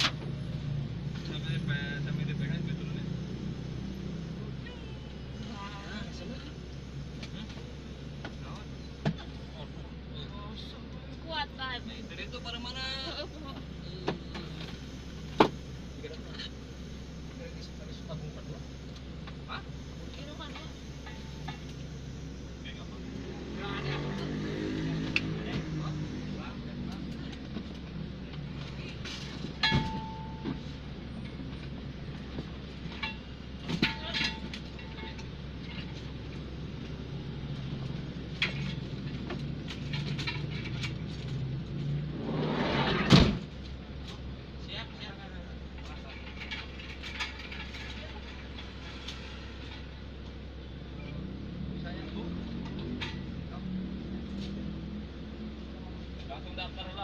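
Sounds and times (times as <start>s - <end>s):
loud thump: 42.8s - 43.5s.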